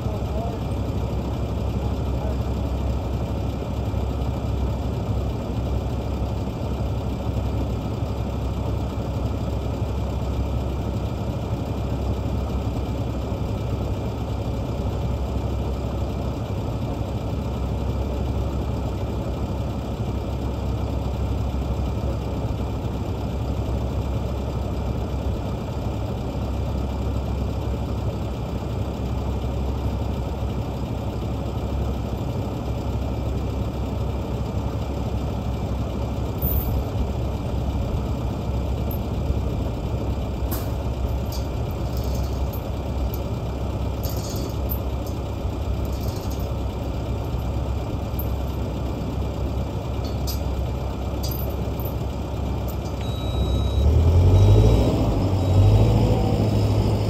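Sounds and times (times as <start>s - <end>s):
diesel engine idling: 0.0s - 57.0s.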